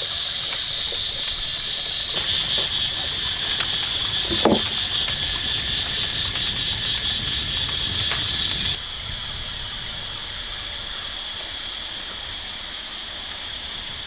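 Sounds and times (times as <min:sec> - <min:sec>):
insect chorus: 0:00.0 - 0:14.0
wood fire crackling: 0:01.3 - 0:08.8
stone slab set down: 0:04.2 - 0:04.7.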